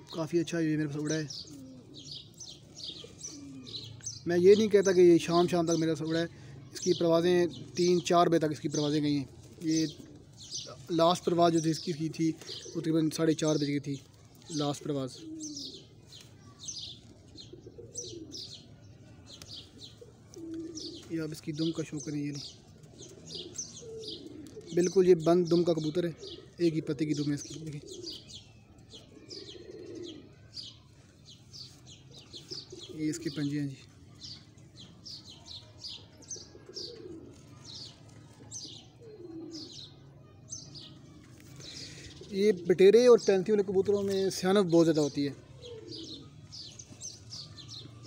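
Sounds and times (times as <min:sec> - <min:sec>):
birds chirping: 0:00.0 - 0:48.0
faint pigeon-like coo: 0:00.0 - 0:48.0.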